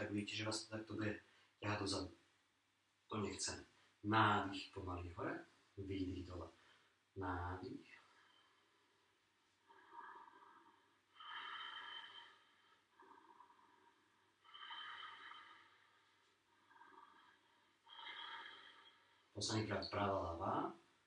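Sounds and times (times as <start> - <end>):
man breathing slowly: 7.9 - 19.3.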